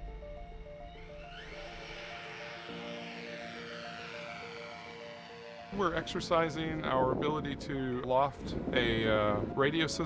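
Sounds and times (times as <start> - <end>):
low held note: 0.0 - 8.0
background music with repeating notes: 0.0 - 10.0
soft swelling wash: 0.0 - 10.0.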